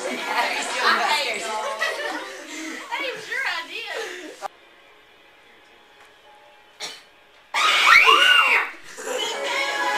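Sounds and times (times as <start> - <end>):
shrill scream: 7.5 - 8.8.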